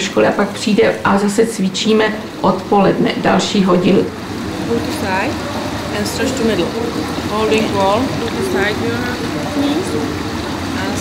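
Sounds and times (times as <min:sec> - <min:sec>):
indistinct voices: 0:00.0 - 0:11.0
water lapping and splashing: 0:00.0 - 0:11.0.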